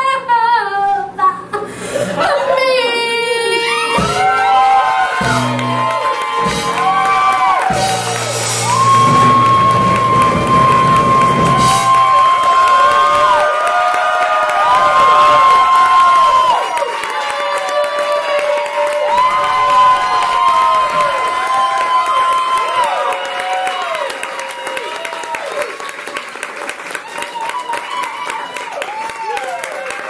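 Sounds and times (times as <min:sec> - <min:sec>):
audience cheering and whooping: 0:02.2 - 0:30.0.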